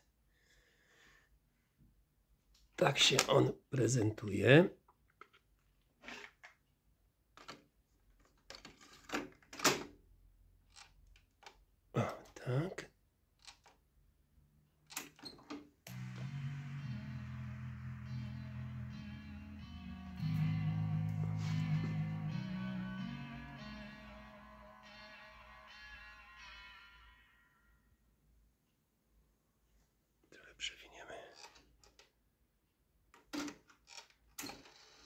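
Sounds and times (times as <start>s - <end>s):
person whispering: 12.0s - 12.9s, 30.3s - 31.6s
music from tape: 15.9s - 27.2s.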